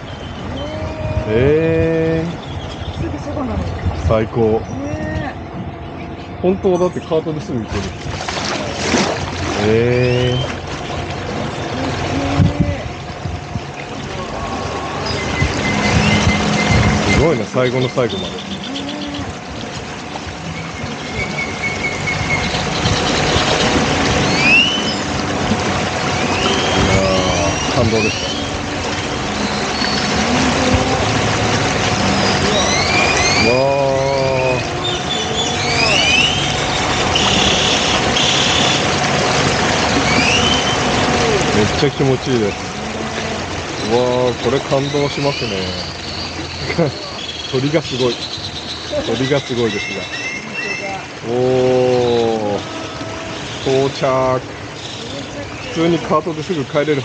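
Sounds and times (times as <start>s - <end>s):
birds calling with whistles: 0.0s - 1.5s, 2.1s - 8.8s, 9.5s - 11.0s, 14.8s - 19.4s, 20.4s - 25.3s, 26.0s - 30.2s, 32.0s - 41.0s, 43.7s - 57.0s
motorboat engine running: 0.0s - 57.0s
water rushing along hull: 0.0s - 57.0s.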